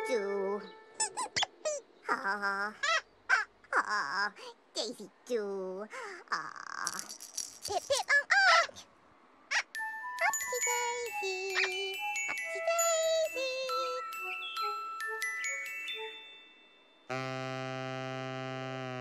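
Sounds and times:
squeaky sing-song vocal sounds: 0:00.0 - 0:04.4, 0:09.6 - 0:16.1
light chime-like tones: 0:09.8 - 0:17.2.

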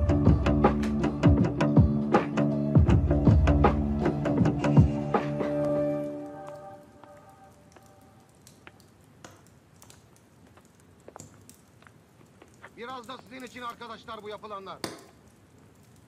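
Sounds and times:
drama score music: 0:00.0 - 0:07.5
small clicks: 0:07.7 - 0:16.0
man speaking: 0:12.6 - 0:14.9.

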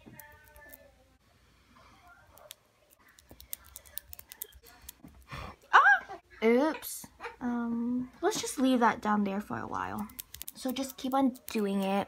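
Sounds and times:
sticky glue clicks: 0:10.0 - 0:11.9.

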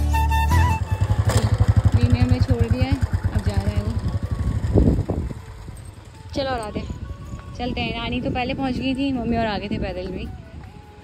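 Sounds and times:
background music: 0:00.0 - 0:11.0
motorcycle engine thumping: 0:01.0 - 0:06.1.

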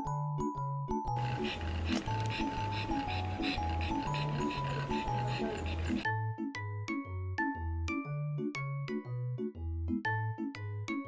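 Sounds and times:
background music with bass and mallets: 0:00.0 - 0:11.0
dog panting fast: 0:01.2 - 0:06.0.

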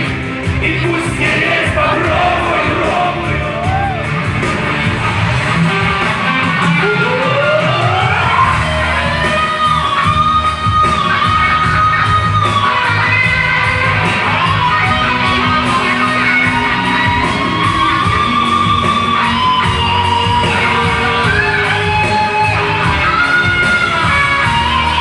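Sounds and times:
electric guitar lead: 0:00.0 - 0:25.0
live rock band playing: 0:00.0 - 0:25.0.

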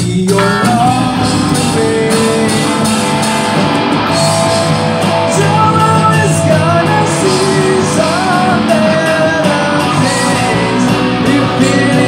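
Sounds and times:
drums playing: 0:00.0 - 0:12.0
electric guitar: 0:00.0 - 0:12.0.

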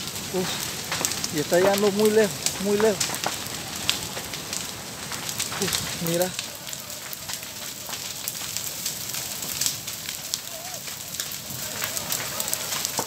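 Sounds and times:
fire crackles and pops: 0:00.0 - 0:13.0
fire hissing: 0:00.0 - 0:13.0.

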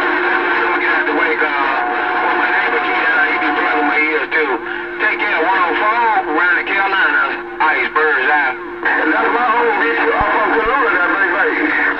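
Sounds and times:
garbled radio voices: 0:00.0 - 0:11.9
steady radio tones: 0:00.0 - 0:11.9.

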